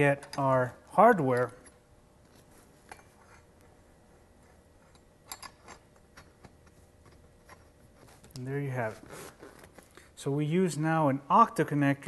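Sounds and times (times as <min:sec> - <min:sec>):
metal hardware clicks and taps: 0:04.9 - 0:07.6.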